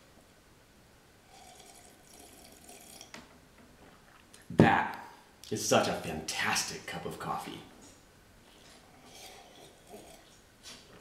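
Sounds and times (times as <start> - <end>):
slurping coffee from a mug: 9.0 - 10.3.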